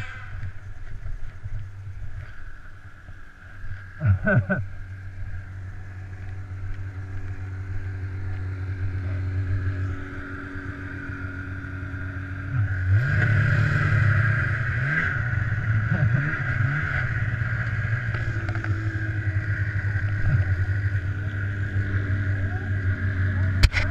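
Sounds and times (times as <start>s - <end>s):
snowmobile engine revving: 0.0s - 23.9s.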